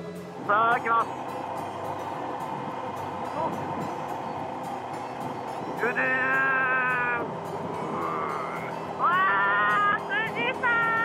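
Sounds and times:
riding and wind noise: 0:00.0 - 0:11.0.

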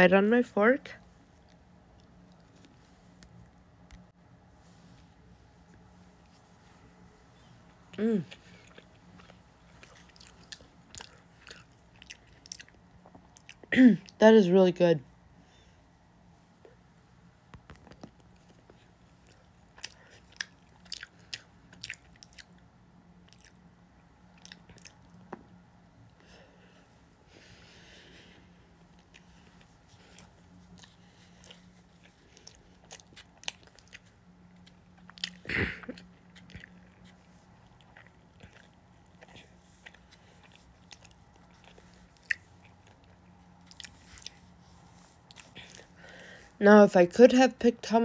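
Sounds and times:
faint steady hum: 0:00.0 - 0:48.0
chewing with wet mouth clicks: 0:08.6 - 0:13.7, 0:17.6 - 0:25.5, 0:28.9 - 0:45.9.

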